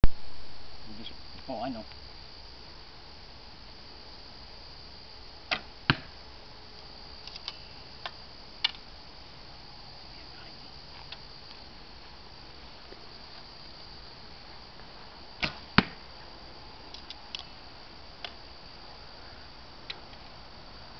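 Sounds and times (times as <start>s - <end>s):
bowstring release snap: 5.5s - 6.1s
arrow striking target: 5.5s - 6.2s, 15.4s - 16.0s.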